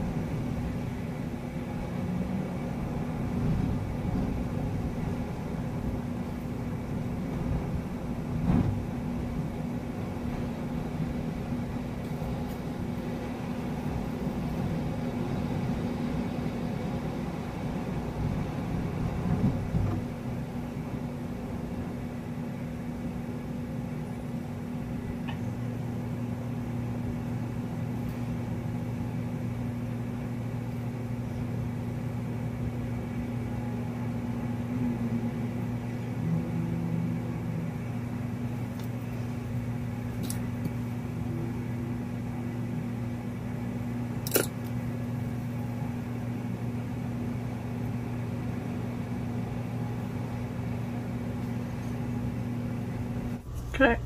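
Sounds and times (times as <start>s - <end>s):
low mechanical hum: 0.0s - 54.0s
lower hum: 0.0s - 54.0s.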